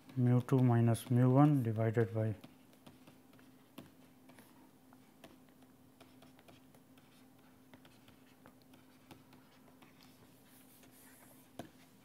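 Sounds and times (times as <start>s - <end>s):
stylus tapping on pen tablet: 0.0s - 10.1s
low electrical hum: 0.0s - 12.0s.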